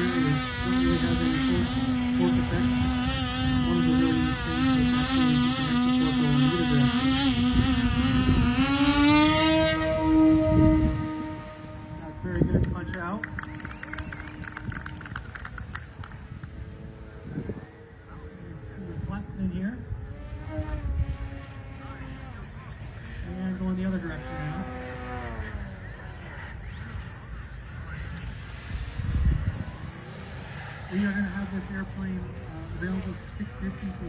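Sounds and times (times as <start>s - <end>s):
model plane motors buzzing: 0.0s - 34.0s
wind rumble on microphone: 0.0s - 34.0s.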